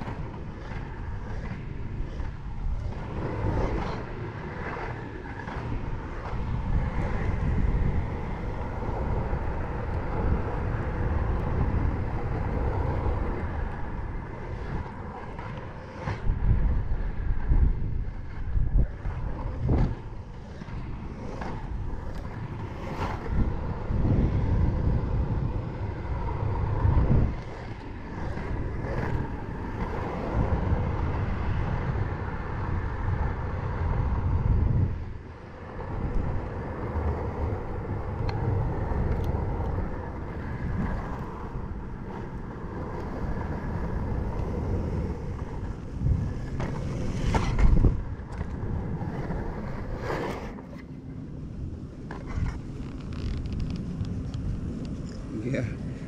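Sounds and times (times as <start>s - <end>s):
inline skate wheels rolling on asphalt: 0.0s - 56.0s
wind on microphone: 0.0s - 56.0s
knocks from skating strides: 36.1s - 51.0s.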